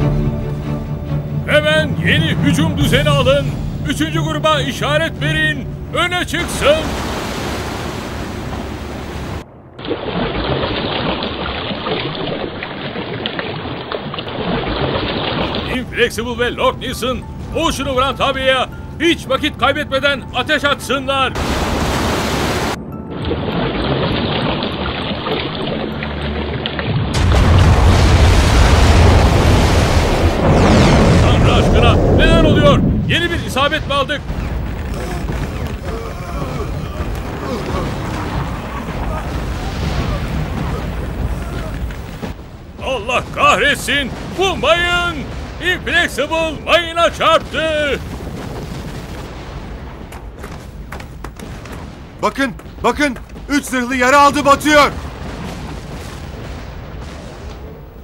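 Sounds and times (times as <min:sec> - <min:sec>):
background music: 0:00.0 - 0:06.9, 0:15.4 - 0:27.4
rumbling explosion: 0:00.0 - 0:12.5, 0:26.9 - 0:58.0
water rushing past ship bow: 0:00.0 - 0:18.7, 0:21.2 - 0:58.0
sharp cracks: 0:27.1 - 0:58.0.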